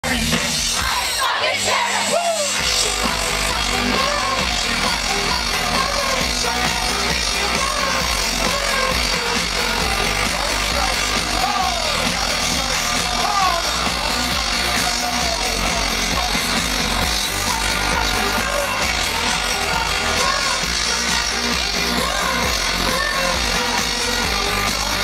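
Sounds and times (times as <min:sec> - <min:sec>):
loud electro-pop band: 0:00.0 - 0:25.0
crowd yelling: 0:00.1 - 0:25.0
heavy bass beat: 0:02.0 - 0:25.0.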